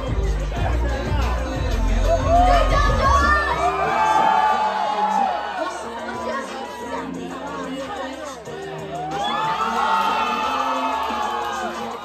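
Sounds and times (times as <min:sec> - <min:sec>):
crowd cheering and shouting: 0:00.0 - 0:12.0
electronic dance music: 0:00.0 - 0:12.0.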